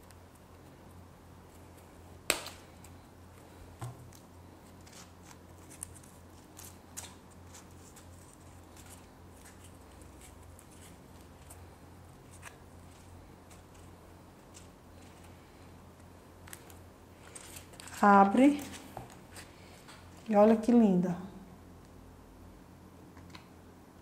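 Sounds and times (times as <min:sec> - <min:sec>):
low steady hum: 0:00.0 - 0:24.0.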